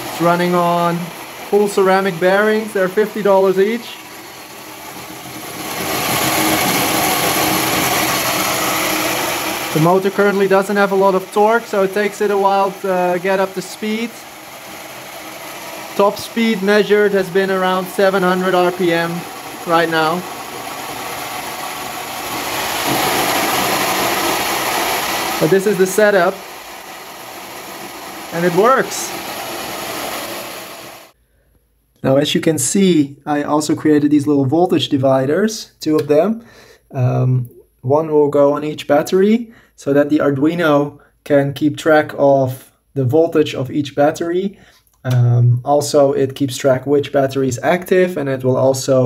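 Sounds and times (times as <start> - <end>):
motor rotor whirring hiss: 0.0 - 31.2.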